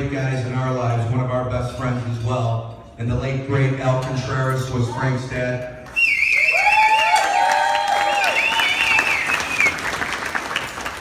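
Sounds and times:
high warbling whistle: 5.9s - 7.2s
audience applauding and cheering: 5.9s - 11.0s.

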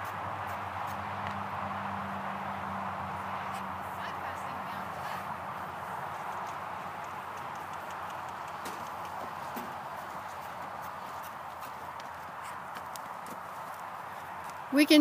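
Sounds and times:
horse hooves trotting on dirt: 0.0s - 15.0s.

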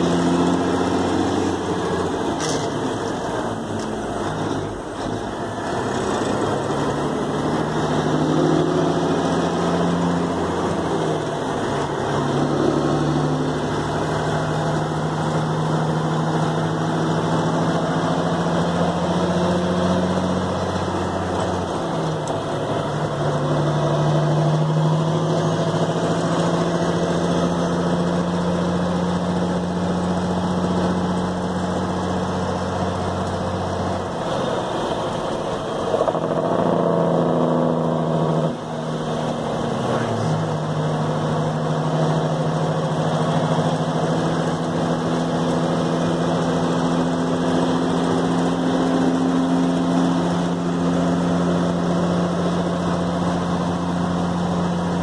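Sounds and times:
diesel truck engine running: 0.0s - 55.0s.

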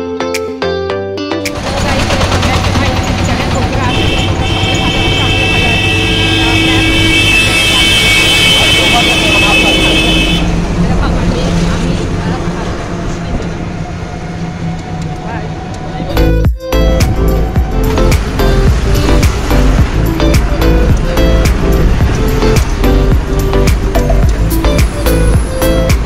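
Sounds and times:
rickshaw motor rumble: 1.6s - 26.0s.

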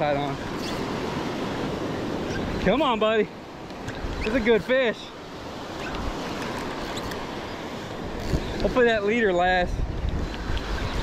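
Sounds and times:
wind rumbling on microphone: 5.4s - 11.0s.

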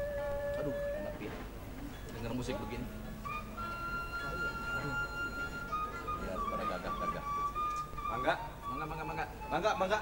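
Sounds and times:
bamboo flute long notes: 0.0s - 1.4s, 3.2s - 10.0s.

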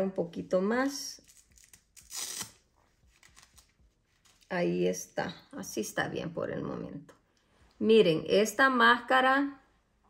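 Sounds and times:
strap rustling against hair: 1.2s - 4.8s.

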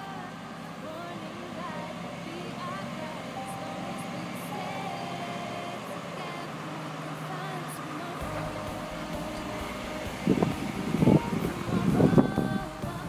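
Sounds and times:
faint voices: 0.0s - 13.0s
tractor engine running: 0.0s - 13.0s.

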